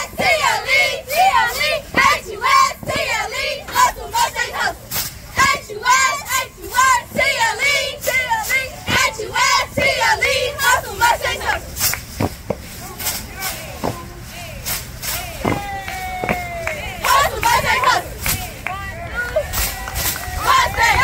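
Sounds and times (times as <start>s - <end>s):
girls shouting a cheer chant: 0.0s - 4.8s, 5.4s - 11.6s, 15.3s - 19.3s.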